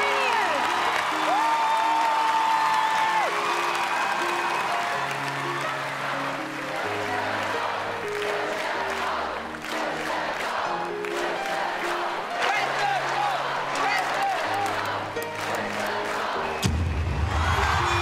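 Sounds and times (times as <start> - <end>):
crowd whooping: 0.0 - 7.0, 12.4 - 18.0
audience applauding and cheering: 0.0 - 18.0.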